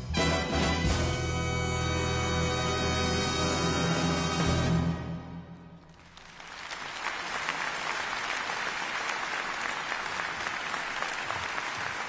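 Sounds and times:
audience applauding: 5.9s - 12.0s.

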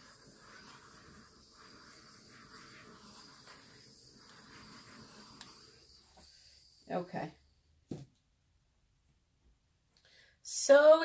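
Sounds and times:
butane torch hissing: 0.0s - 7.9s.

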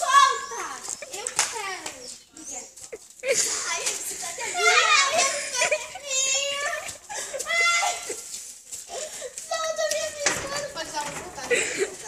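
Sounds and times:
girls crying out and exclaiming: 0.0s - 12.0s.

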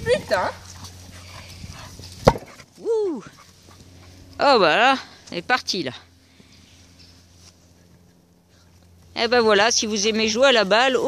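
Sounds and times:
ball struck on grass: 2.2s - 2.5s.

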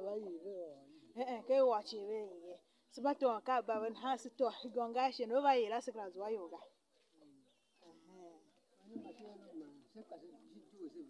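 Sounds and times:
woman's voice: 2.9s - 6.7s.

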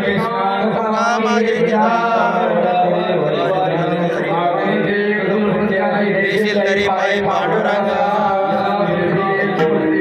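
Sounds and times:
men chanting devotional refrain: 0.0s - 10.0s.

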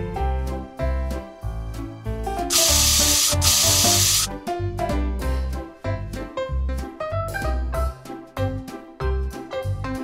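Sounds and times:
background music: 0.0s - 10.0s
aerosol spray can hiss: 2.5s - 4.3s.

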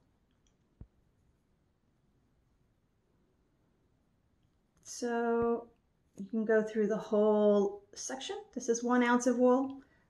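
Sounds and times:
woman speaking: 4.8s - 9.8s.

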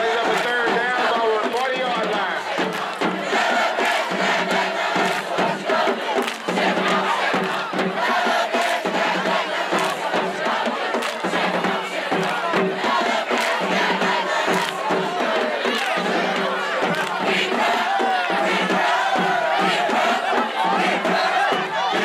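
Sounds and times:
crowd noise: 0.0s - 22.0s
marching band brass: 0.0s - 22.0s
steady drum beat: 0.0s - 22.0s.

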